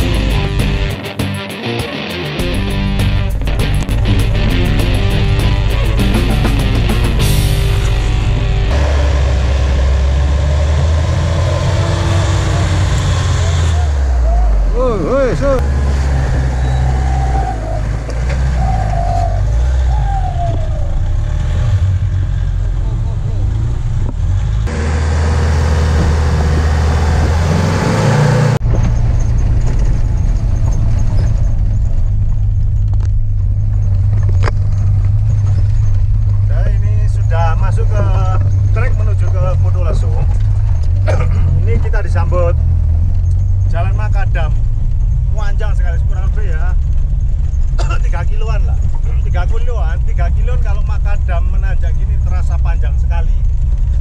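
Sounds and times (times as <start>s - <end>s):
off-road vehicle engines running: 0.0s - 54.0s
engine drone inside vehicle cab: 7.5s - 15.7s, 16.5s - 54.0s
voices calling out: 12.5s - 15.6s, 16.4s - 21.0s.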